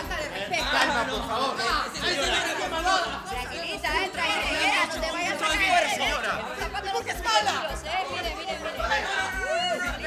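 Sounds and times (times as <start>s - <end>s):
background music with low beat: 0.0s - 10.0s
voices talking and calling out: 0.0s - 10.0s.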